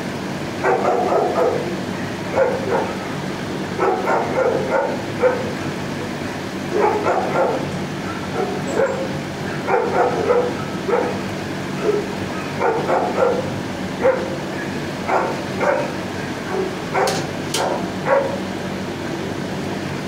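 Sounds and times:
steady low hum: 0.0s - 20.0s
dogs barking: 0.6s - 18.6s.

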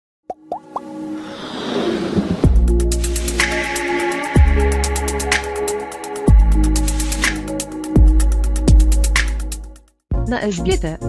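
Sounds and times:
quick rising pops: 0.6s - 2.8s.

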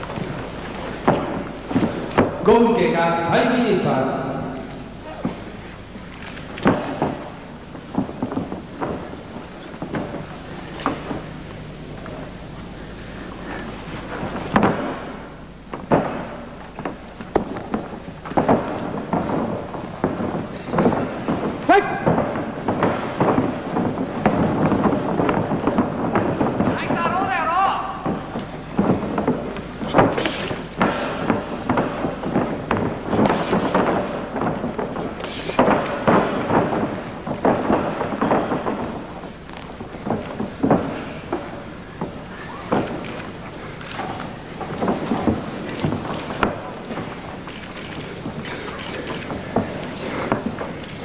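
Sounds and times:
loud wavering yells: 26.8s - 28.1s, 42.3s - 42.8s.

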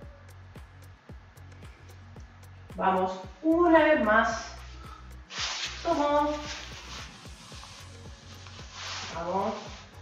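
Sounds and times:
low thumping beat: 0.0s - 10.0s
quiet background music: 0.0s - 10.0s.

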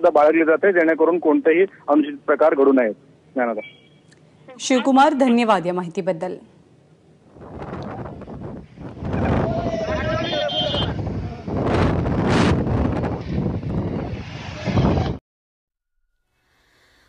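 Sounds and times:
wind buffeting microphone: 7.3s - 15.2s
wavering call: 9.4s - 11.0s.

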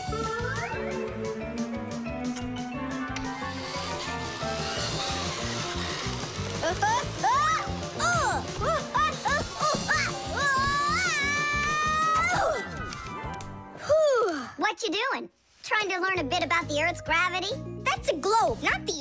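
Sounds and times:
cartoon background music: 0.0s - 14.4s, 15.7s - 19.0s
high-pitched wordless cries: 6.6s - 12.7s.

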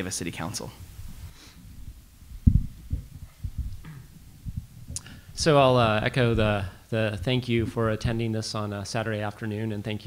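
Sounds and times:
dull low thumps: 0.8s - 8.4s.

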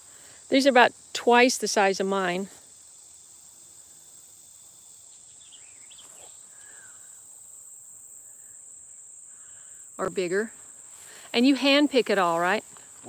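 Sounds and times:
high-pitched insect chorus: 0.0s - 13.0s.

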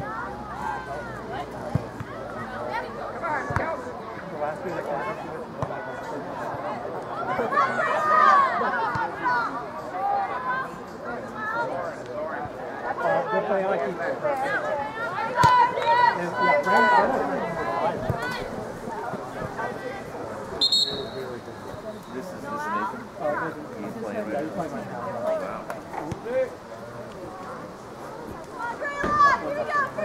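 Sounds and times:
spectators and players calling out: 0.0s - 30.0s
short high whistle: 20.6s - 21.3s.

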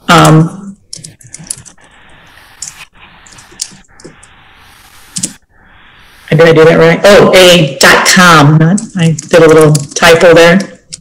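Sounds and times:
computer keyboard typing: 0.1s - 2.0s, 8.4s - 11.0s.

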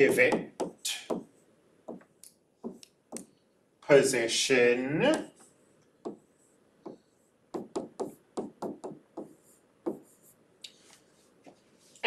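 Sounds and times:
stylus tapping on tablet screen: 0.1s - 1.3s, 1.9s - 3.3s, 6.0s - 6.2s, 6.8s - 10.1s.

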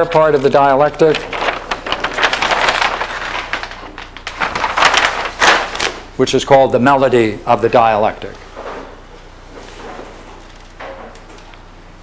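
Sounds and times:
paper rustling and crinkling: 0.0s - 6.1s.

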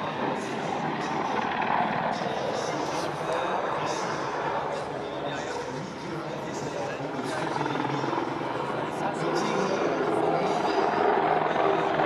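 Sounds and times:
helicopter rotor and turbine: 0.0s - 12.0s.

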